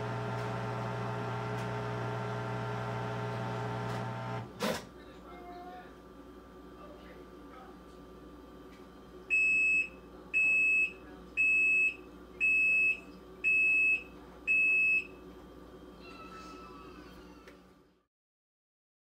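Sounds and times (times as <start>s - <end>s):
washing machine high beeps: 9.3s - 15.2s.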